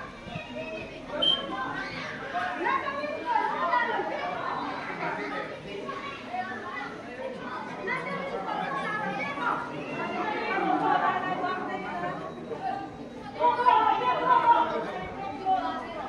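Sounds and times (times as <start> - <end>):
people talking and calling out: 0.0 - 16.0.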